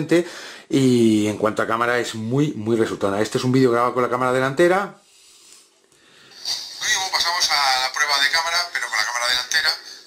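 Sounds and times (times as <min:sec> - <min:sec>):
recorded man's voice: 0:00.0 - 0:05.0, 0:06.4 - 0:10.0
outdoor noise from phone speaker: 0:06.4 - 0:10.0.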